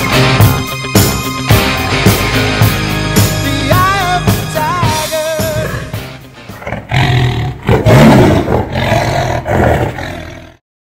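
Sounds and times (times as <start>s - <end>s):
loud deep roar: 6.6s - 10.6s.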